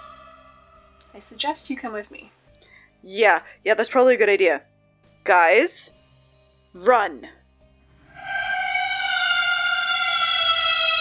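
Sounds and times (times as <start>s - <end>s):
siren-like falling tone: 0.0s - 1.0s, 8.0s - 11.0s.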